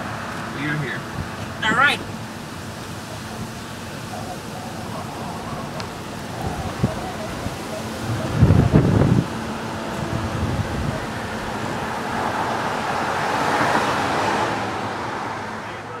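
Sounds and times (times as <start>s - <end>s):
wind and road noise in car: 0.0s - 16.0s
wind buffet on microphone: 4.8s - 13.0s.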